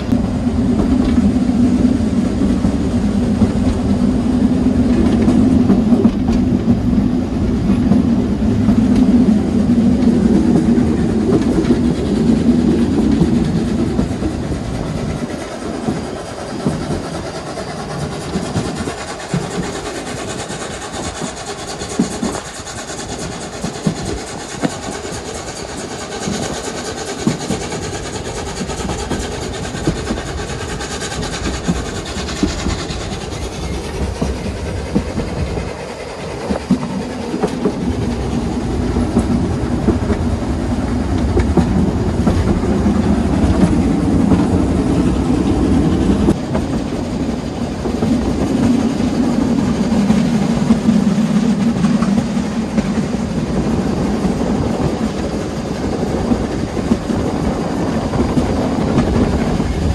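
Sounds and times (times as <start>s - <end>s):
railway carriage rumbling: 0.0s - 59.9s
wheels clacking over rail joints: 0.0s - 59.9s.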